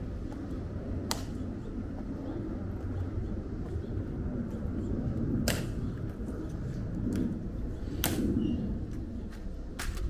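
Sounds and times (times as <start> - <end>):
low outdoor background noise: 0.0 - 10.0
sharp crack: 1.1 - 1.4, 5.4 - 5.8, 8.0 - 8.3.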